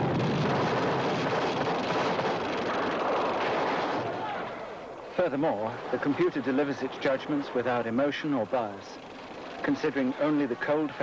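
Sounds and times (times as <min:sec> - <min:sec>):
battle explosions rumbling: 0:00.0 - 0:04.8.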